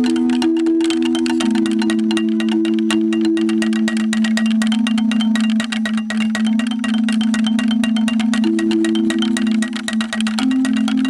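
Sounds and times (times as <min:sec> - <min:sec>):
marimba roll: 0:00.0 - 0:11.0.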